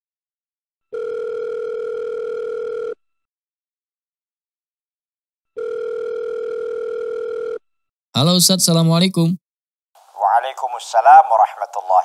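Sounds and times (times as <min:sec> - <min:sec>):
telephone ringback tone: 0:00.9 - 0:03.0, 0:05.5 - 0:07.6.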